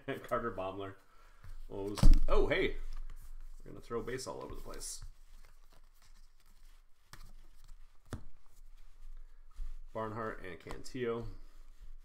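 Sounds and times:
cards sliding and rubbing: 0:02.8 - 0:12.0
light taps on cards: 0:10.6 - 0:10.9.

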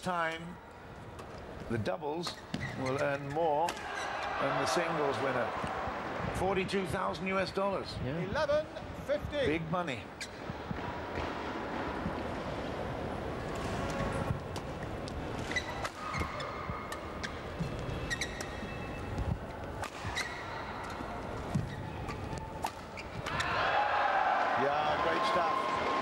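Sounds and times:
racket hitting shuttlecock: 0:19.8 - 0:21.8.

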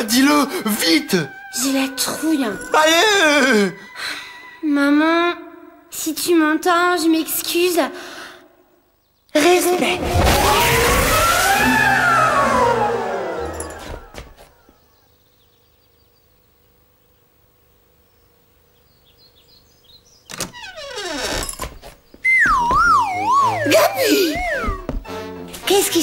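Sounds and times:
falling swoop: 0:10.0 - 0:14.6, 0:22.3 - 0:25.0
warbling tones: 0:22.3 - 0:25.0
cartoon magic shimmering burst: 0:22.4 - 0:24.8.

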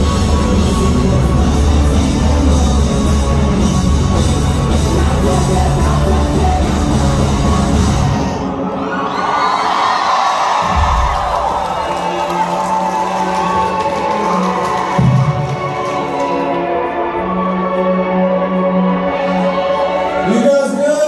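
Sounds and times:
live rock band playing: 0:00.0 - 0:08.5
crowd cheering and whooping: 0:07.6 - 0:16.6.

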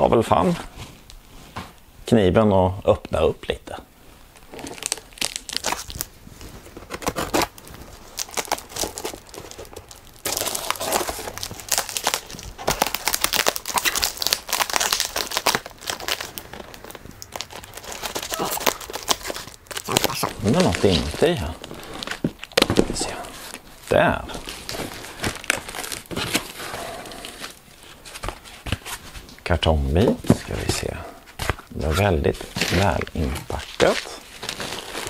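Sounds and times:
tape and cardboard tearing: 0:04.4 - 0:21.2.

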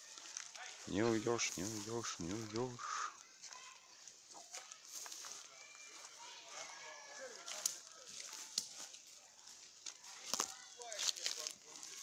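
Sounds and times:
rustling in dry grass: 0:00.0 - 0:12.0
sharp twig snaps: 0:07.5 - 0:08.8.

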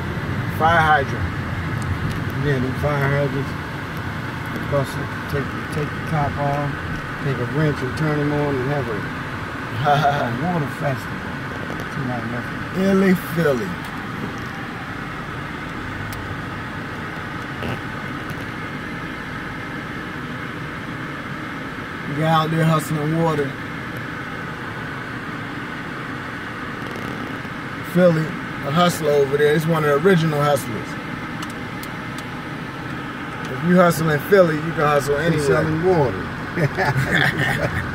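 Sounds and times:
car cabin engine noise: 0:00.0 - 0:37.9.

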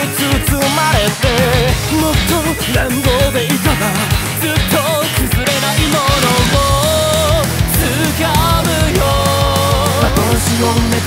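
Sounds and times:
rock song with male vocals: 0:00.0 - 0:11.0.

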